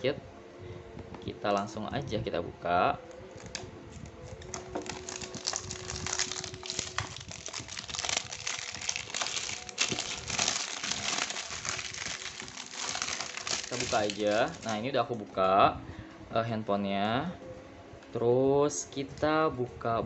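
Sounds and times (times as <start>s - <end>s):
plastic wrap crinkling: 3.4s - 15.0s.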